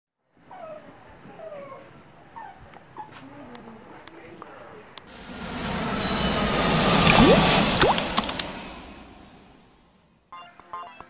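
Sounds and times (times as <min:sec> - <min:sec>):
faint animal whines: 0:00.4 - 0:04.0.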